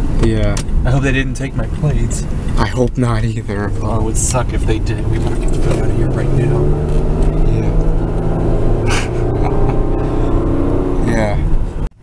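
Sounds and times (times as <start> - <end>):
car engine accelerating: 0.0 - 11.9
road noise inside car: 0.0 - 12.0.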